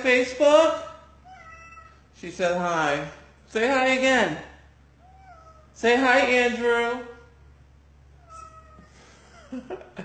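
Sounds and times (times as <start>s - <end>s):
cat meowing: 1.2s - 2.1s, 5.0s - 5.8s, 8.2s - 9.0s.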